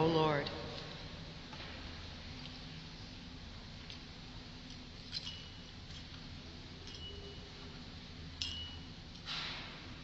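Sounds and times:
faint low hum: 0.0s - 10.0s
light metallic clinks with ringing: 6.8s - 7.6s, 8.4s - 9.0s.

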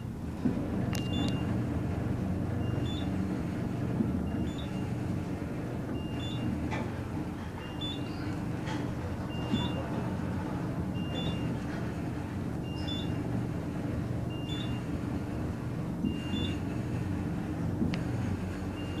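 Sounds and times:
elevator running with low hum: 0.0s - 19.0s.

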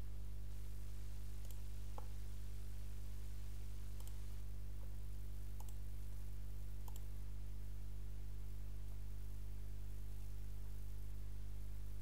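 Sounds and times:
low electrical hum: 0.0s - 12.0s
computer mouse clicks: 1.4s - 2.1s, 4.0s - 4.2s, 5.6s - 5.8s, 6.8s - 7.1s.

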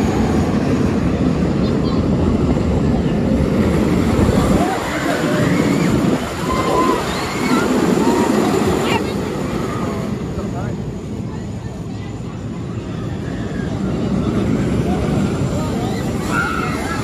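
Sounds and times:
faint voices: 0.0s - 17.0s
roller coaster rumbling on track: 0.0s - 17.0s.

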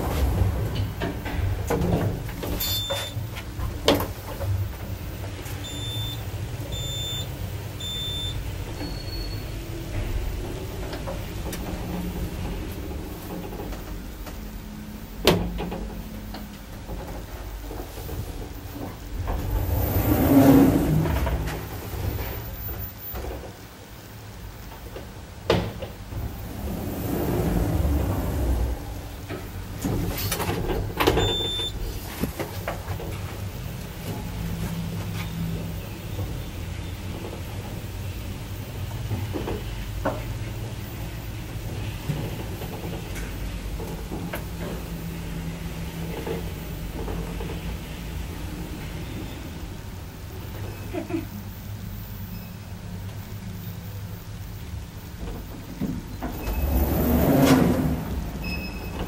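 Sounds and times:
lift humming and rumbling: 0.0s - 59.0s
short electronic beeps: 2.6s - 3.2s, 5.6s - 9.5s, 31.2s - 31.8s.

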